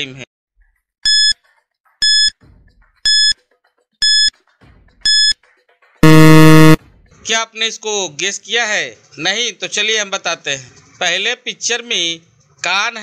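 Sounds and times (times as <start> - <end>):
short high beeps: 1.1 - 1.3, 2.0 - 2.3, 3.1 - 3.3, 4.0 - 4.3, 5.1 - 5.3, 6.0 - 6.8
long low buzzer: 6.0 - 6.8.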